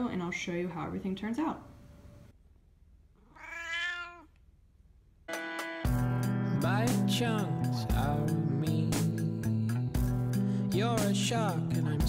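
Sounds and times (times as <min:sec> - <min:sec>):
cat meowing: 0:03.2 - 0:04.4
music: 0:05.3 - 0:12.0.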